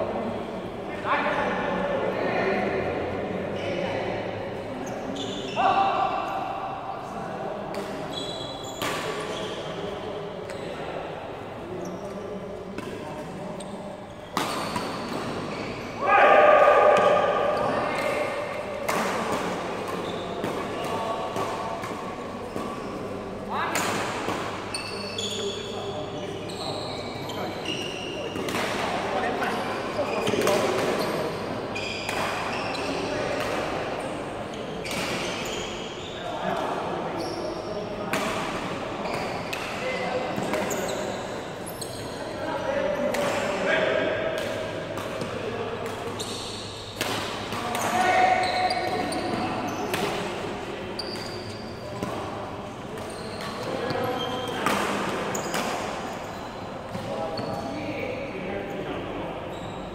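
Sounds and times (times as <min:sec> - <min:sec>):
shoe squeaks: 0:04.8 - 0:05.7, 0:08.0 - 0:09.8, 0:13.6 - 0:16.0, 0:20.0 - 0:20.4, 0:24.7 - 0:28.4, 0:29.4 - 0:33.3, 0:34.5 - 0:36.4, 0:37.1 - 0:37.9, 0:39.0 - 0:42.3, 0:46.2 - 0:47.0, 0:47.7 - 0:49.9, 0:50.9 - 0:52.0, 0:52.9 - 0:54.6, 0:55.3 - 0:58.1, 0:59.5 - 0:59.9
racket hitting shuttlecock: 0:18.0 - 0:22.8, 0:30.2 - 0:31.2, 0:44.3 - 0:50.4.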